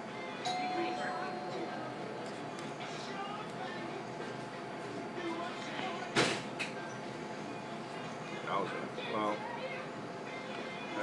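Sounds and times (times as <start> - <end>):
murmur of diners' voices: 0.0 - 11.0.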